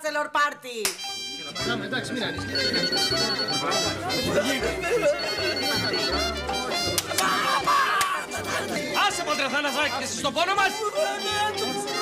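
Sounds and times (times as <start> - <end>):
voices: 1.4 - 12.0.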